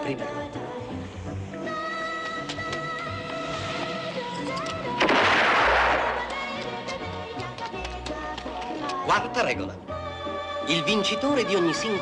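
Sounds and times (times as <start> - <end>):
music: 0.0 - 12.0
echoing gunshot: 5.0 - 6.4.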